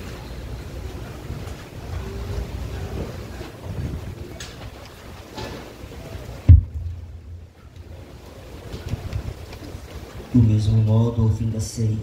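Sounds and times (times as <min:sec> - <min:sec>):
microphone handling and wind rumble: 0:01.1 - 0:10.8
low thump: 0:06.5 - 0:07.6.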